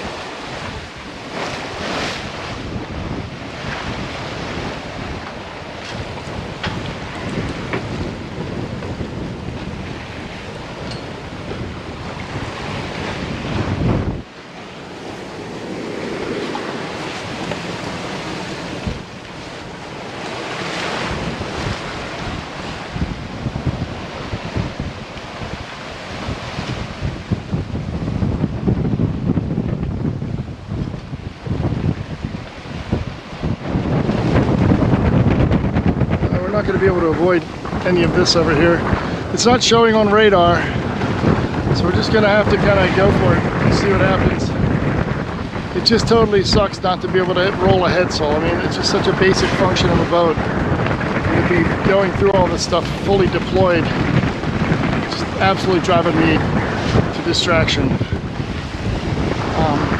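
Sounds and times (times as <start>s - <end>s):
water streaming along hull: 0.0s - 59.9s
waves rushing: 0.0s - 59.9s
wind buffeting microphone: 0.0s - 59.9s.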